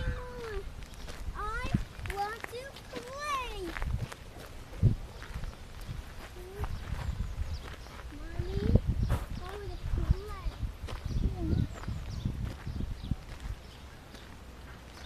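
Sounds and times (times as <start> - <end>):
footsteps on gravel: 0.0 - 15.0.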